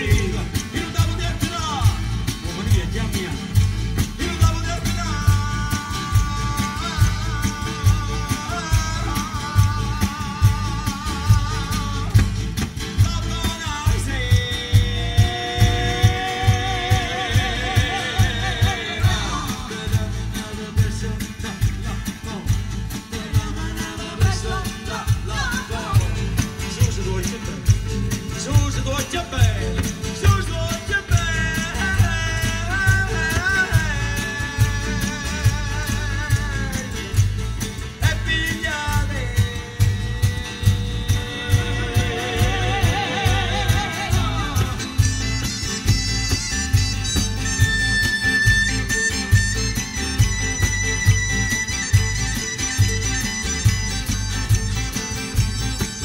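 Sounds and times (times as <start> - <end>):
person singing: 0.0 - 27.7, 28.3 - 55.0
acoustic guitars: 0.0 - 56.0
steady drum beat: 0.0 - 56.0
lead instrument high notes: 39.3 - 56.0.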